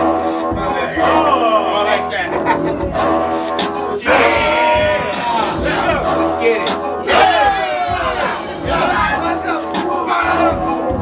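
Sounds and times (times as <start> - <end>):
crowd yelling and shouting: 4.0 - 6.2, 7.0 - 10.6.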